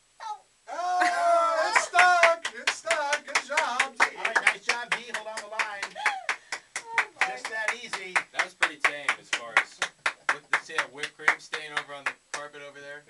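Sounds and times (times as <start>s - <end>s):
people laughing loudly: 0.8s - 2.3s
sharp hand claps: 1.7s - 12.6s.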